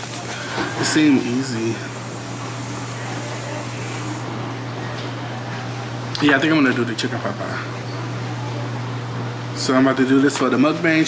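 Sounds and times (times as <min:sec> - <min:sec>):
fan hum and hiss: 0:00.0 - 0:11.0.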